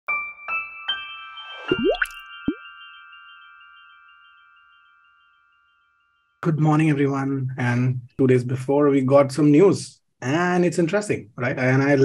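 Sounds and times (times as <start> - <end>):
bell-like chime notes: 0.4 - 6.4
cartoon plop: 1.7 - 2.6.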